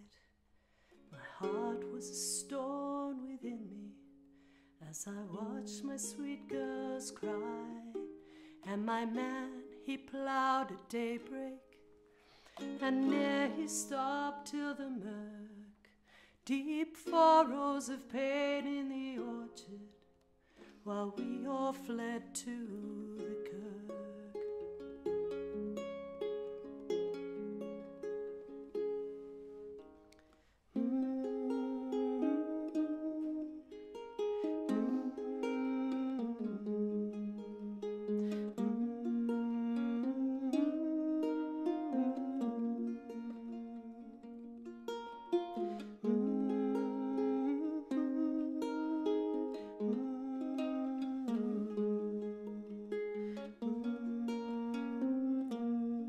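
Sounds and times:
ukulele plucked: 0:01.0 - 0:04.1, 0:05.1 - 0:11.9, 0:12.5 - 0:15.7, 0:16.5 - 0:20.0, 0:20.6 - 0:56.0.

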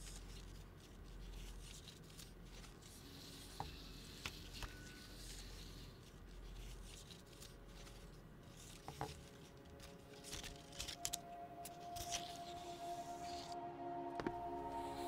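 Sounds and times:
film strip rubbing and rustling: 0:00.0 - 0:13.6
low steady hum: 0:00.0 - 0:15.0.

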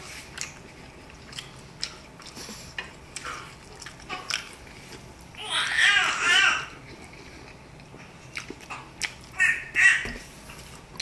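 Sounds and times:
mouth clicks while eating: 0:07.9 - 0:09.4.

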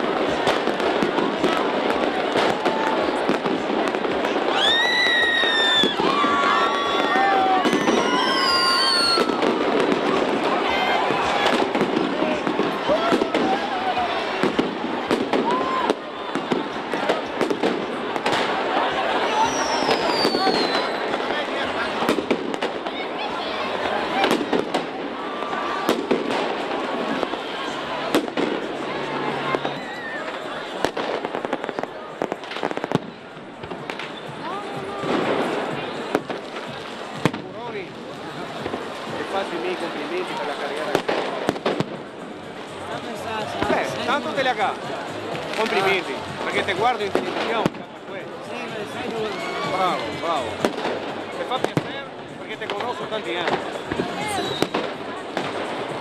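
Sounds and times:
crowd talking and cheering: 0:00.0 - 0:56.0
firecrackers banging: 0:00.0 - 0:56.0
shrill falling whistles: 0:07.8 - 0:09.3, 0:19.4 - 0:21.0.

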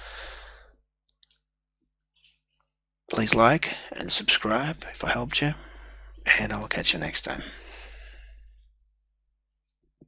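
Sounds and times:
breathy exhale: 0:00.0 - 0:00.7
speech: 0:03.1 - 0:07.6
faint steady hum: 0:03.1 - 0:08.9.

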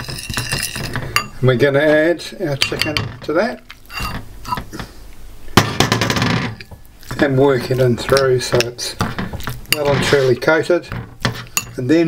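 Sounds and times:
bowls scraping and clattering: 0:00.0 - 0:01.4, 0:02.5 - 0:04.9, 0:06.0 - 0:11.8
ceramic bowls clinking: 0:00.0 - 0:01.4, 0:02.5 - 0:04.7, 0:06.5 - 0:10.4, 0:11.3 - 0:11.9.

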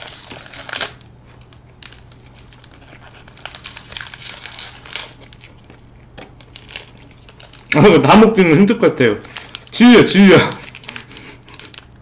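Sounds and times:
snack wrapper crinkling: 0:00.0 - 0:12.0.

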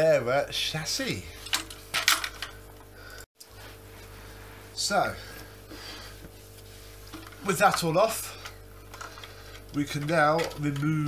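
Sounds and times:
steady low hum: 0:00.0 - 0:11.0
plastic parts clattering: 0:01.4 - 0:02.5.

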